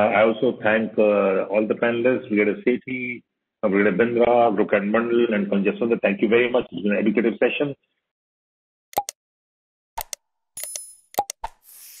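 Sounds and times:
sharp clicks and pops: 8.9s - 9.2s, 10.0s - 11.9s.

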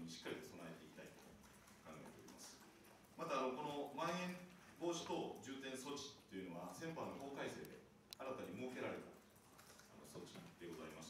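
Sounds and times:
man speaking over a microphone: 0.0s - 2.6s, 3.2s - 9.2s, 9.9s - 11.0s
computer keyboard typing: 0.9s - 5.6s, 7.0s - 11.0s.

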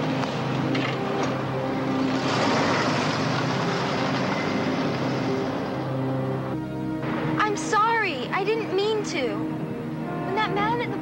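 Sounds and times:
car engine and road noise: 0.0s - 11.0s
low film score: 0.0s - 11.0s.

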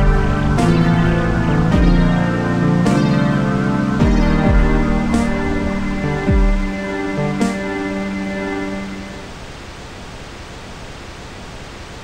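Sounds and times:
steady static hiss: 0.0s - 12.0s.

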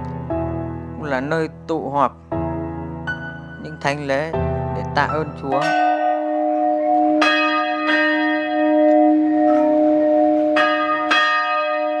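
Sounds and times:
church bell ringing: 5.1s - 12.0s.

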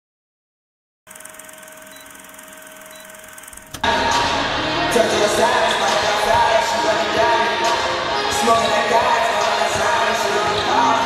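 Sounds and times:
crowd noise: 3.8s - 11.0s
loud music: 3.8s - 11.0s.

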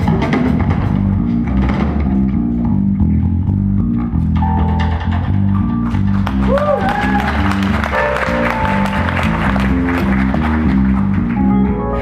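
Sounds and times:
electric bass guitar: 0.0s - 12.0s.

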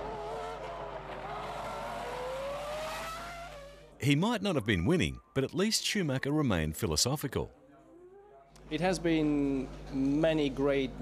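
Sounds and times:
racing car engine accelerating: 0.0s - 4.0s.

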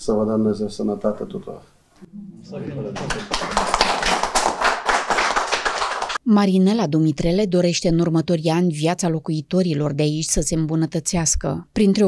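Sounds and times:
people clapping: 2.6s - 6.2s.

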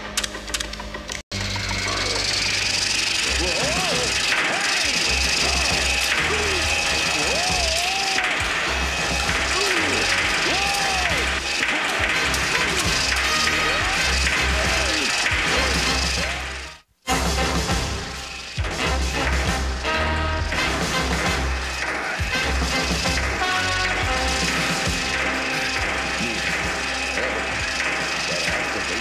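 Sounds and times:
clattering and creaking effects: 0.0s - 29.0s
rising and falling whoops: 3.7s - 8.4s, 9.3s - 11.9s.

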